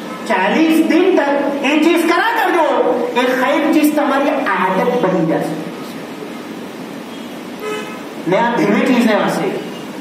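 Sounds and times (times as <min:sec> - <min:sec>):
steady background noise: 0:00.0 - 0:10.0
vehicle horn toot: 0:07.6 - 0:08.1.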